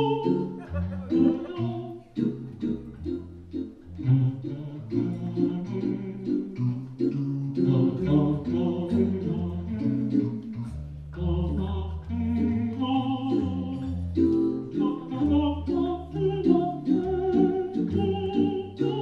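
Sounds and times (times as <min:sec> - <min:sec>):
male voices singing a cappella: 0:00.0 - 0:02.0, 0:04.0 - 0:06.7, 0:07.6 - 0:13.9, 0:14.7 - 0:19.0.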